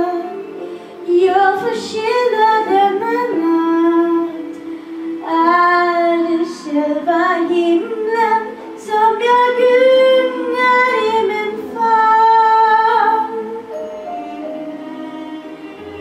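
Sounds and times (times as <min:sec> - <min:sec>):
girl singing into a microphone: 0:00.0 - 0:13.7.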